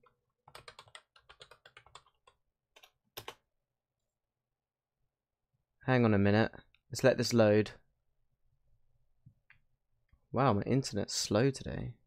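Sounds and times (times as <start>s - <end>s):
typing on computer keyboard: 0.4s - 3.4s.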